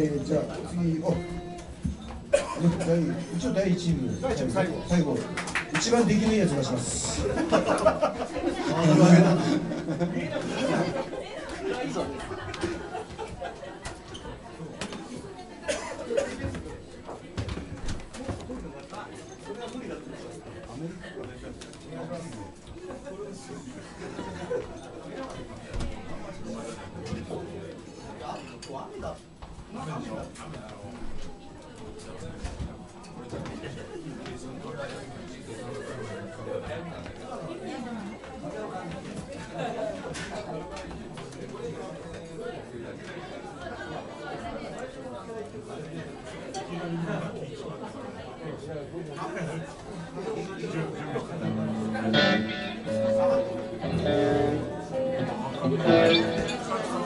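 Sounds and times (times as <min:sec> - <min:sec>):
people chattering: 0:00.0 - 0:57.0
several voices talking at once: 0:00.0 - 0:57.0.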